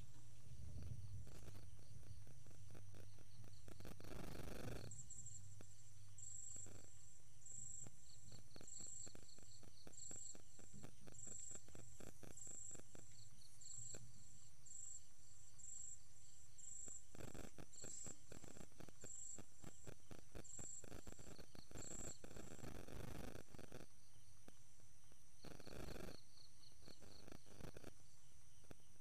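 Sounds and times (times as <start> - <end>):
crickets chirping: 0.0 - 29.0.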